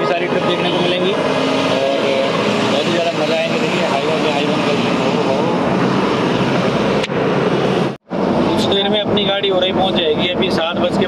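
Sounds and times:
heavy truck passing: 0.0s - 11.0s.

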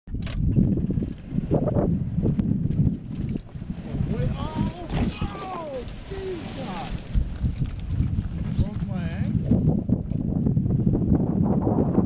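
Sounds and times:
golf cart rumble and rattle: 0.1s - 12.0s.

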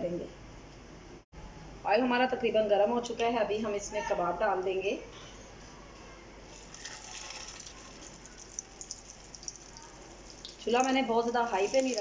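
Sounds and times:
oil sizzling in frying pan: 6.5s - 12.0s.

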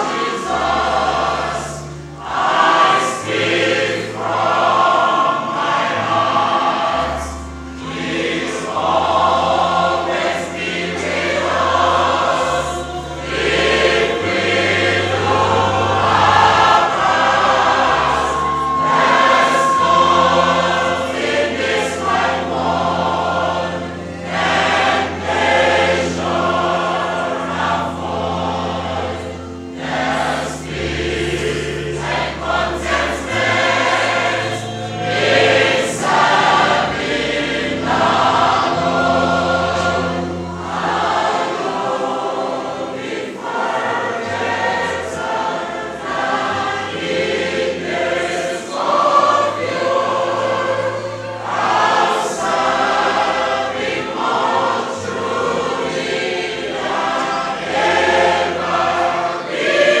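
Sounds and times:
choir singing a hymn: 0.0s - 60.0s.

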